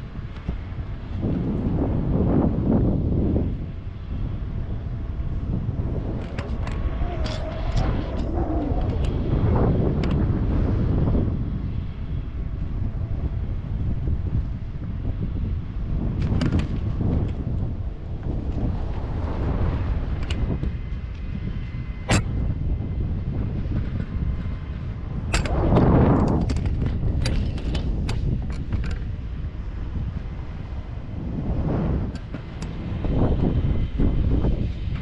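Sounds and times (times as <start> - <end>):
wind buffeting microphone: 0.0 - 35.0.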